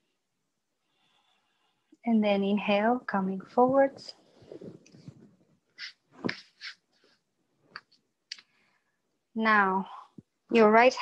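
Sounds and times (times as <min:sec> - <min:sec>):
person breathing: 0:00.8 - 0:02.0, 0:08.4 - 0:09.1
body movement on yoga mat: 0:03.6 - 0:07.3.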